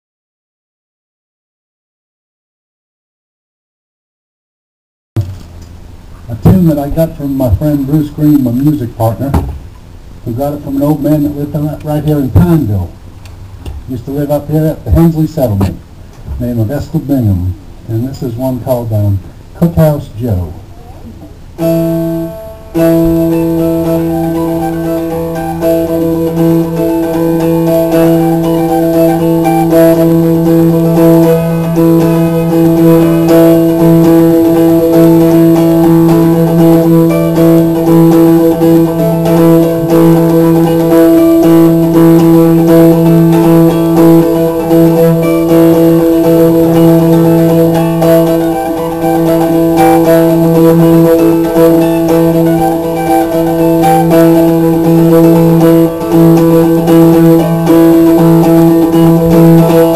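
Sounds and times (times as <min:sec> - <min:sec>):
mountain dulcimer playing: 0:21.6 - 0:59.9.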